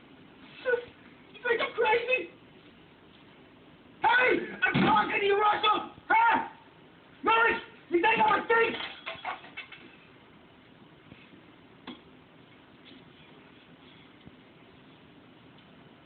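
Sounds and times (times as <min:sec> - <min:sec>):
strained voices shouting: 0:04.0 - 0:08.8.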